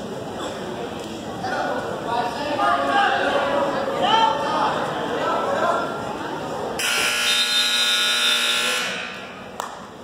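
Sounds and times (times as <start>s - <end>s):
scoreboard buzzer tone: 6.8s - 9.2s.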